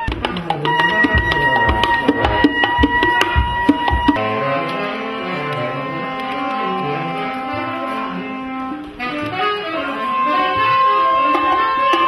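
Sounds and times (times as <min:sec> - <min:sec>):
instrumental band music: 0:00.0 - 0:12.0.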